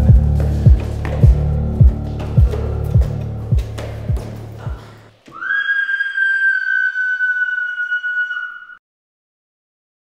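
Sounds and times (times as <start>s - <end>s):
high whistling tone: 5.3s - 8.8s.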